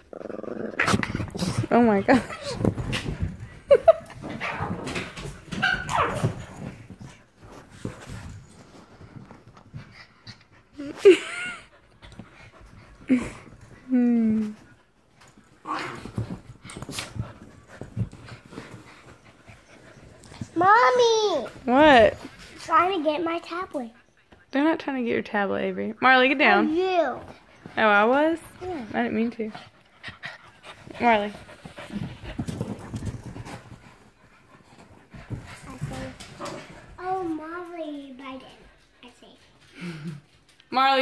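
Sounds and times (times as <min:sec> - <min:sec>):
dogs snuffling: 0:05.3 - 0:37.5.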